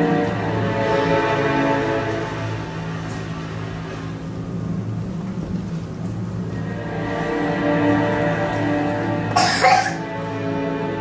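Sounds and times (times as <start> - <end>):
music of held tones: 6.4 - 11.0
person coughing: 9.4 - 10.0.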